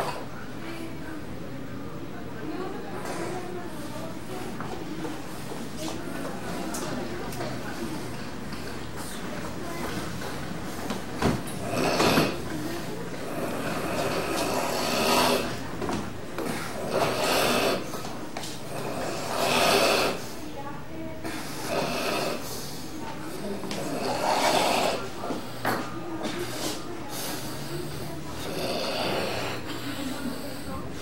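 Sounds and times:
man snoring breaths: 0:11.6 - 0:12.4, 0:13.2 - 0:15.6, 0:16.4 - 0:18.0, 0:18.6 - 0:20.3, 0:21.3 - 0:22.8, 0:23.6 - 0:25.8, 0:26.6 - 0:30.7.

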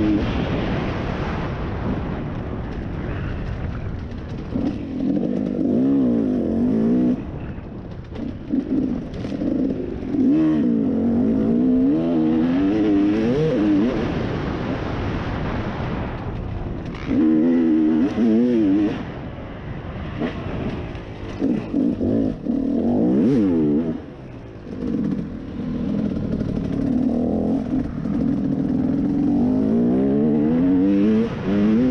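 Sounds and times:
dirt bike engine revving: 0:04.5 - 0:07.3, 0:08.2 - 0:14.1, 0:16.9 - 0:19.1, 0:20.0 - 0:31.9.

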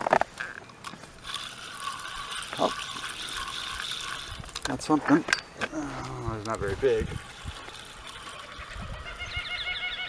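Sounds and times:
bird calling in high notes: 0:08.1 - 0:10.0.

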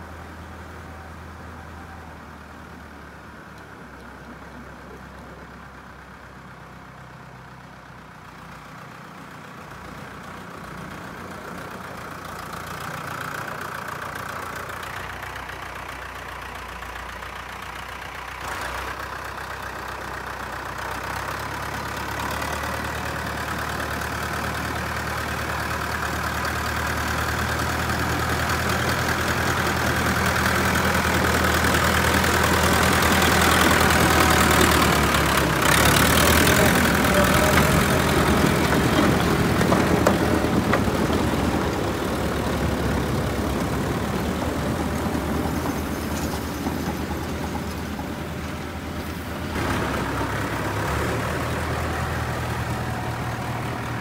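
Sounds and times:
tractor diesel engine running: 0:00.0 - 0:54.0.

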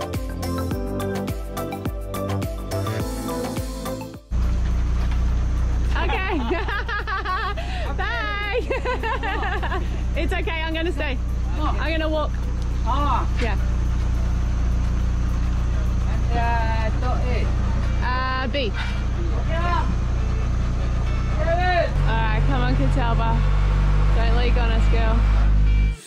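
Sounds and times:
diesel engine running and revving: 0:04.3 - 0:26.0.

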